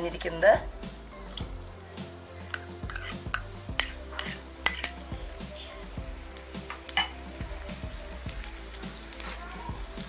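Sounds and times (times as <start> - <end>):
faint sizzle of frying: 0.0 - 10.0
metal spoon clinking against pan: 2.5 - 5.1, 7.0 - 7.2.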